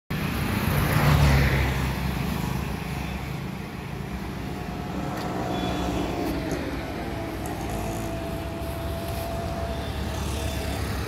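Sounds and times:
steady traffic noise: 0.1s - 11.0s
vehicle passing: 0.6s - 11.0s.

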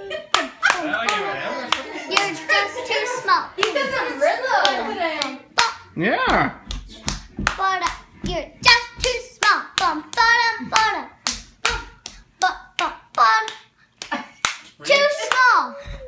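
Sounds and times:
rhythmic hand clapping: 0.0s - 16.0s
child's voice: 14.8s - 16.0s.

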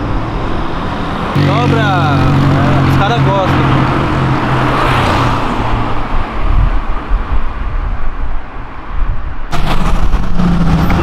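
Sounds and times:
car engine driving past: 0.7s - 6.4s.

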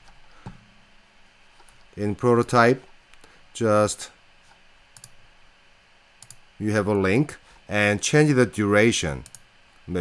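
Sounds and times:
computer mouse clicks: 5.0s - 5.2s, 6.2s - 6.4s, 9.2s - 9.4s.

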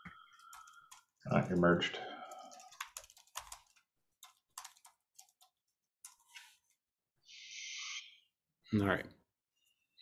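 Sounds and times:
typing on computer keyboard: 0.2s - 1.2s, 2.2s - 6.2s.

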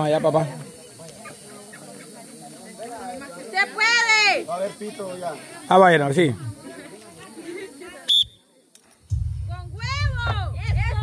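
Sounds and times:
faint voices: 0.0s - 11.0s
referee whistle blast: 8.1s - 8.4s.

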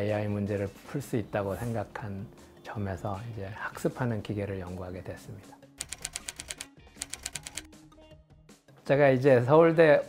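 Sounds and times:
soft background music: 0.0s - 10.0s
typewriter key clicks: 5.8s - 7.7s.

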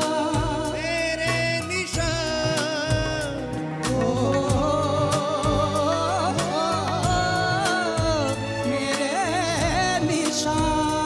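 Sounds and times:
band accompaniment: 0.0s - 11.0s
drum strikes: 0.0s - 11.0s
person singing live: 0.0s - 11.0s.

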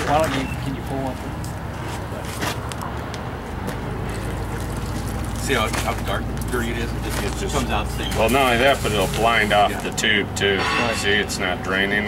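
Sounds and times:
water trickling through a sieve: 4.3s - 5.7s.

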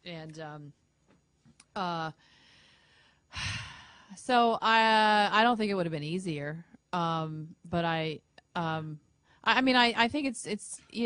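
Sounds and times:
faint breath: 2.2s - 4.2s
woman sighing: 3.3s - 4.2s.

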